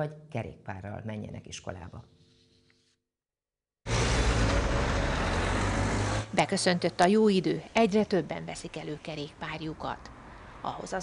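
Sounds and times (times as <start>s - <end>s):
motor vehicle running close by: 3.9s - 6.9s.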